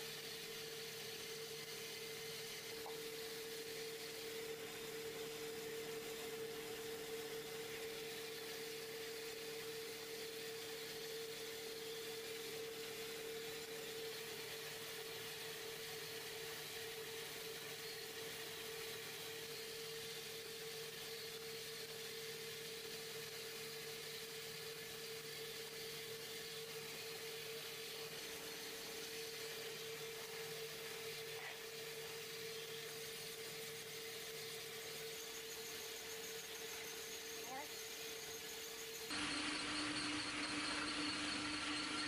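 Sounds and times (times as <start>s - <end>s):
wood lathe motor humming: 0.0s - 42.0s
lower motor tone: 39.1s - 42.0s.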